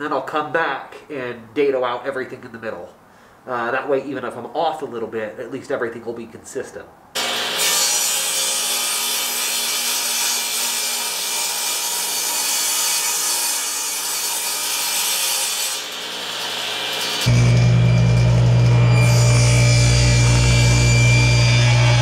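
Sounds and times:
table saw cutting wood: 0:07.2 - 0:22.0
music: 0:17.3 - 0:22.0.

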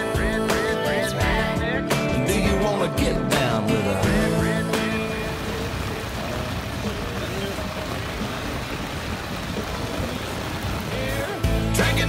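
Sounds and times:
heavy rain on a boat cover: 0:04.0 - 0:12.0.

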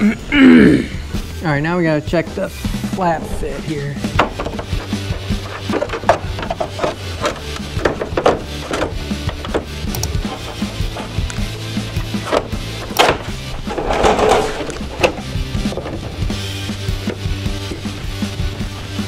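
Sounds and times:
background music with bass line: 0:00.0 - 0:19.0
knocks and taps on fiberglass: 0:04.1 - 0:10.1.

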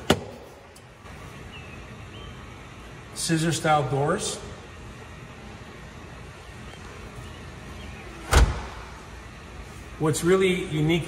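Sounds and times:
faint room hum: 0:00.0 - 0:11.0
car door thump shutting: 0:08.2 - 0:08.9.

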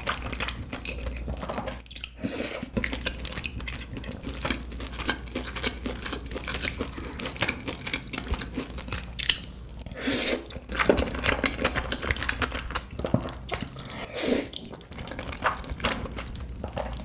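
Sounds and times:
wet chewing and mouth smacking: 0:00.0 - 0:17.0.

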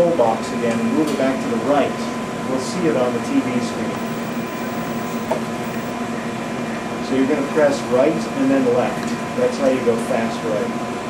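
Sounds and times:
laboratory equipment humming: 0:03.8 - 0:06.0.

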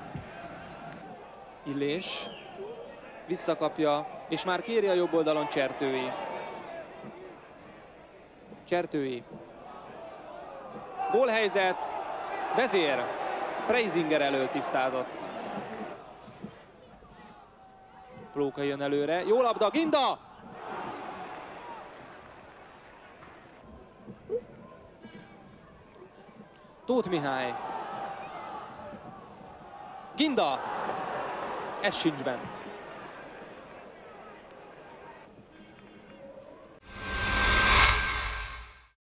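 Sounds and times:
stadium crowd reacting: 0:00.0 - 0:08.4, 0:09.4 - 0:36.8.

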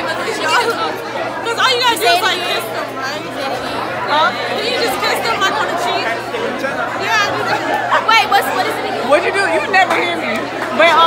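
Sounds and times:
crowd of students chattering: 0:00.0 - 0:11.0.

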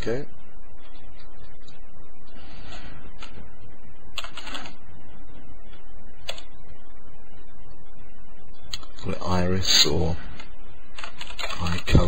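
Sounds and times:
low hum: 0:00.0 - 0:12.0
computer keyboard keystrokes: 0:04.2 - 0:04.7, 0:11.0 - 0:11.9.

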